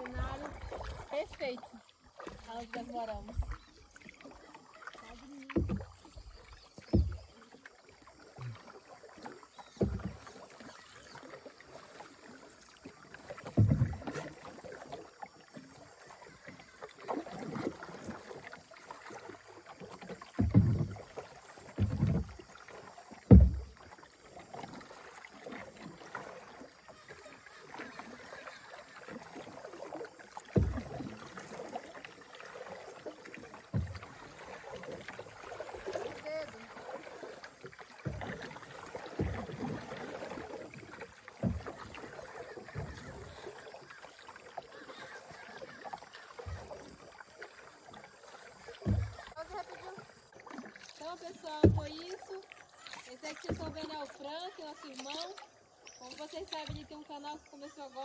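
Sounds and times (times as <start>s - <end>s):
paddle strokes in water: 0.0s - 58.0s
water moving along hull: 0.0s - 58.0s.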